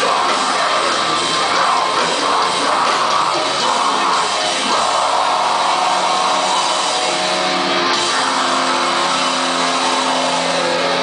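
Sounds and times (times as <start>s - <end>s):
metal band playing loud: 0.0s - 11.0s.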